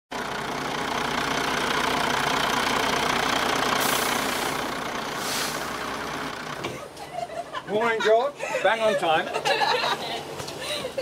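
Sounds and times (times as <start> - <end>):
bus engine idling: 0.1 - 11.0
short hisses of air: 3.8 - 4.6, 5.2 - 5.8.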